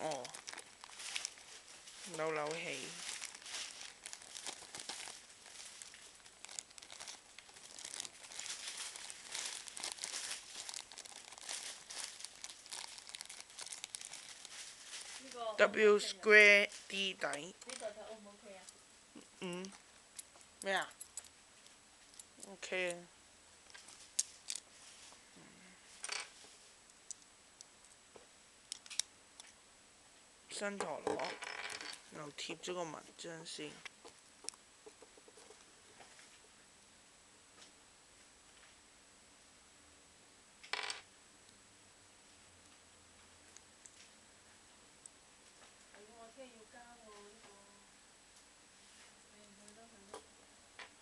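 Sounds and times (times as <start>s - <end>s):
plastic bag crinkling: 0.0s - 15.7s, 23.7s - 25.1s.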